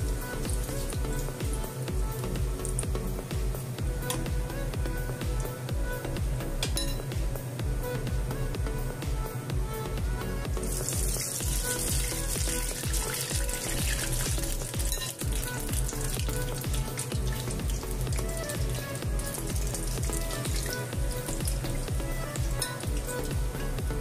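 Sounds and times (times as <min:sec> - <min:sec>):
background music with steady beat: 0:00.0 - 0:24.0
dough sizzling in hot oil: 0:10.7 - 0:23.1.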